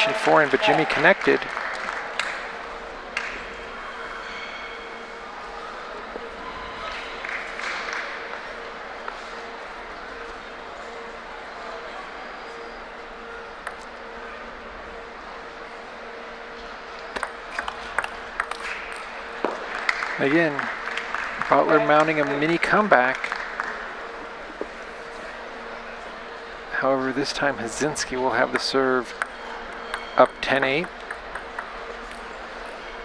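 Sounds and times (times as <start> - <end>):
crowd murmur: 0.0 - 33.0
steady low hum: 0.0 - 33.0
ping-pong ball clicks: 17.1 - 19.6, 28.5 - 32.8.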